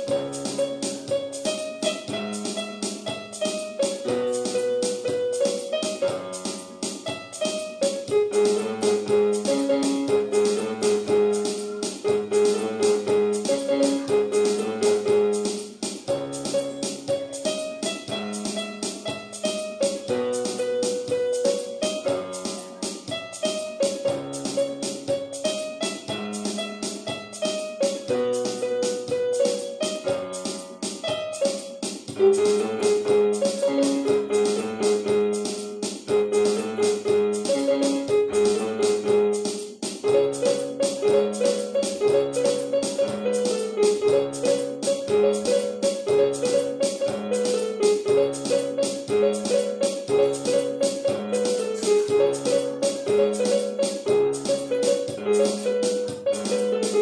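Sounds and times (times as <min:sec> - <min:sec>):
electronic keyboard playing: 0:00.0 - 0:57.0.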